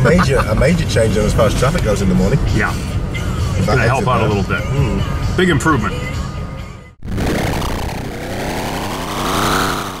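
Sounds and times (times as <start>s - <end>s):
background music: 0.0s - 7.0s
in-car sound: 0.0s - 10.0s
logo sting rush with pitched sweep: 7.0s - 10.0s.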